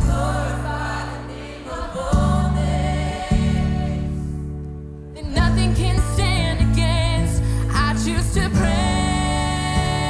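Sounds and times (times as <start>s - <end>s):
people singing: 0.0s - 4.4s, 8.3s - 10.0s
live worship band playing: 0.0s - 10.0s.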